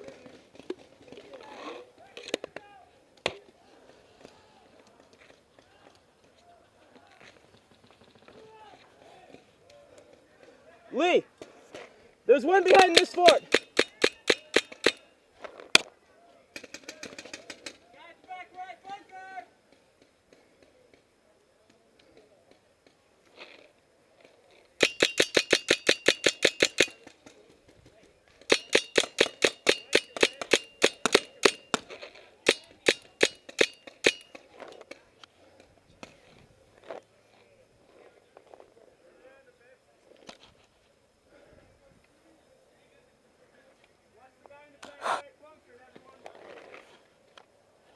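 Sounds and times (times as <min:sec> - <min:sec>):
paintball marker firing: 0:12.5 - 0:15.0, 0:28.5 - 0:34.5.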